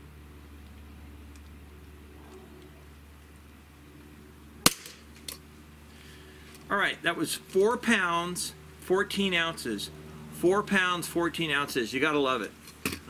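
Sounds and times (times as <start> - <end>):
pistol hammer snapping: 4.7 - 5.4.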